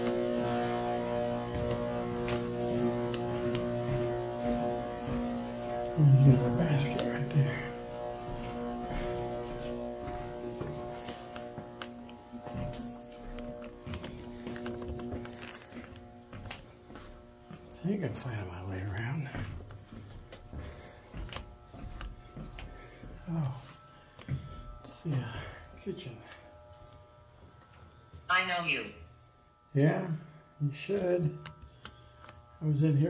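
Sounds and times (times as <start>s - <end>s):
low hum of held tones: 0.0s - 33.0s.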